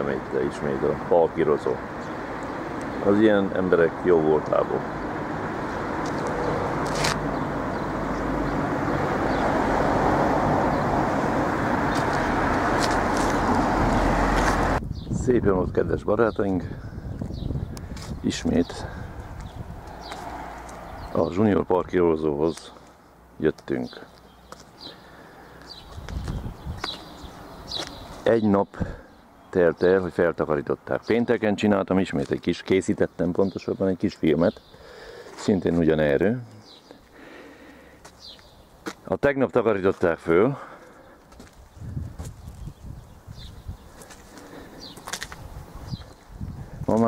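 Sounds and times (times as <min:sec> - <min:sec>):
faint street background: 0:00.0 - 0:47.0
road traffic noise: 0:00.0 - 0:47.0.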